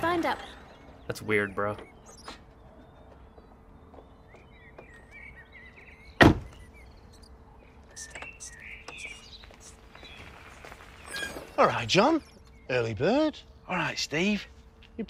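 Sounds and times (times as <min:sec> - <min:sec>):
faint bird chirps: 0:00.0 - 0:14.2
car door shutting: 0:06.2 - 0:06.6.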